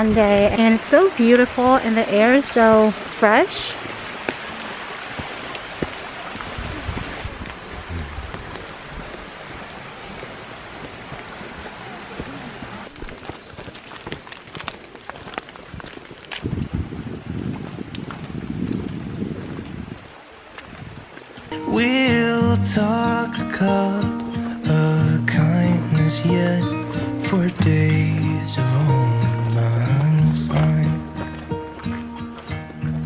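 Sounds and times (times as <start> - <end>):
wind rumbling on microphone: 0.0 - 3.0, 5.1 - 21.6
water running over rocks: 0.0 - 33.0
ticks and crunches: 12.8 - 16.8.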